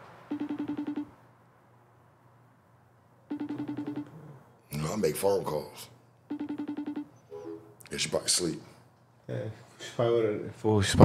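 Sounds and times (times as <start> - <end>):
phone ringback tone: 0.3 - 1.1, 3.3 - 4.1, 6.3 - 7.6.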